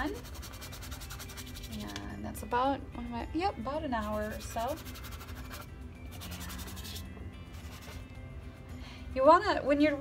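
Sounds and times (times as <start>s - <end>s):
paintbrush scrubbing canvas: 0.1s - 1.9s, 4.0s - 8.0s.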